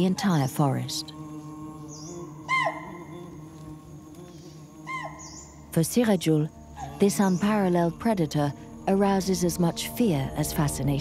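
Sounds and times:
low steady hum: 0.0s - 11.0s
deer alarm calls: 2.5s - 3.0s, 4.9s - 5.5s.

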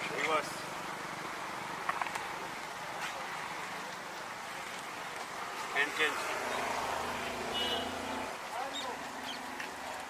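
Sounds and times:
birds calling and chirping: 6.2s - 9.6s.

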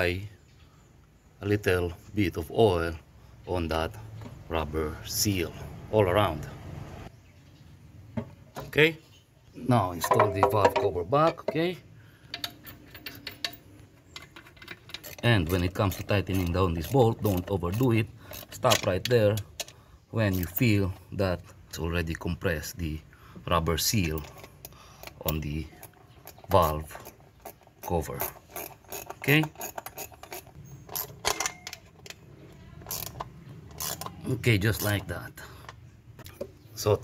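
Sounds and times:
wrench clicking on bolt: 14.2s - 19.8s, 27.0s - 32.2s, 32.8s - 34.2s.

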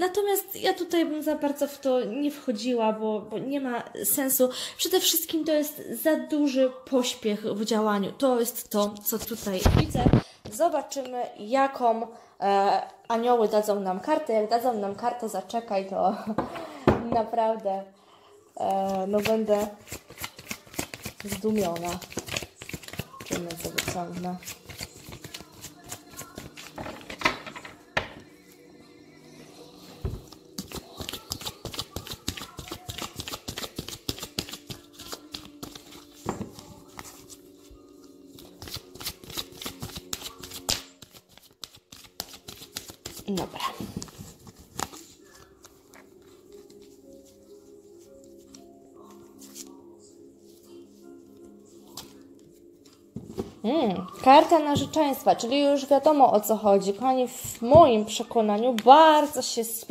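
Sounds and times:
cards being shuffled: 18.7s - 27.3s, 30.2s - 37.5s, 38.3s - 47.5s, 48.2s - 49.7s.

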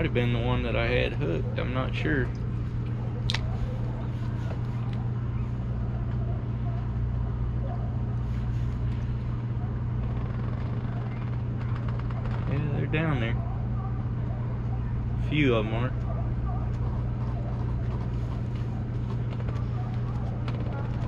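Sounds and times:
low machine hum: 0.0s - 21.0s.

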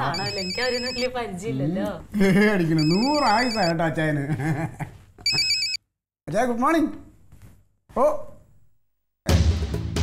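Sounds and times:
mobile phone ringtone trilling: 0.0s - 1.2s, 2.7s - 3.7s, 5.2s - 5.8s.

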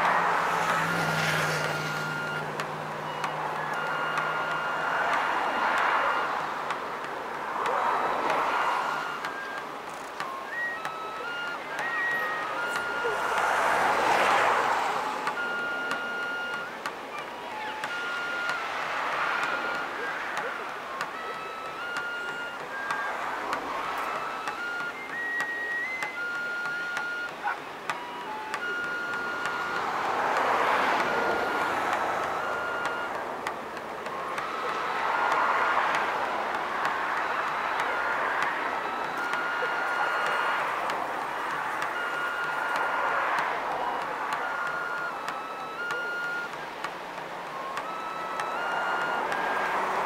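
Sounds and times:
waves breaking on beach: 0.0s - 15.4s
flute playing slow melody: 0.0s - 50.0s.

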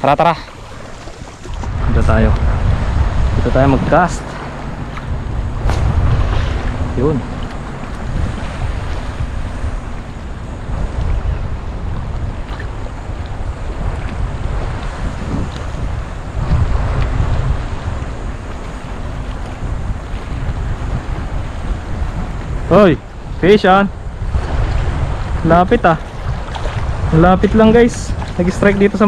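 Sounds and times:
small waves lapping: 0.0s - 29.0s
wind buffeting microphone: 0.0s - 29.0s.

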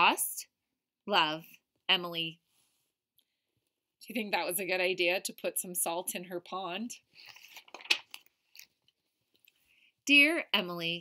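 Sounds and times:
paper page rustling: 7.2s - 8.7s
crisp paper snap: 7.3s - 8.3s.

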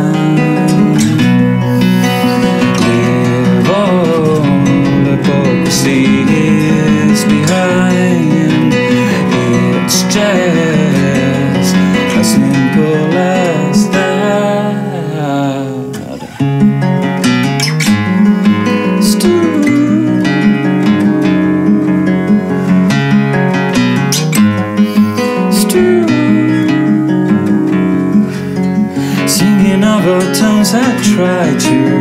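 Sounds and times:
fingerstyle acoustic guitar: 0.0s - 32.0s.

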